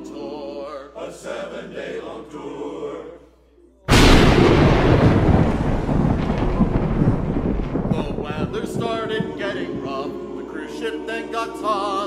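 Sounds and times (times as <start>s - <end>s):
deep storm noise: 3.9s - 11.0s
thunder crack: 3.9s - 11.6s.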